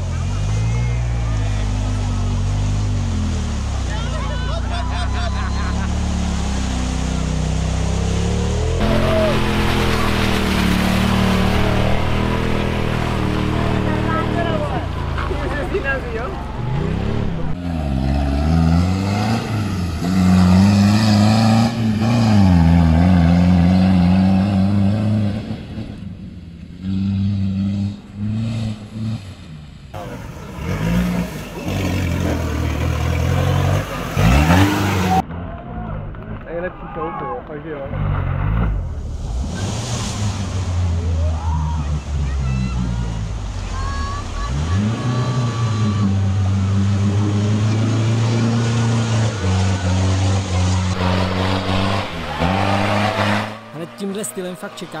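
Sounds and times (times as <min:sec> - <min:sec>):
off-road vehicle engines revving: 0:00.0 - 0:55.0.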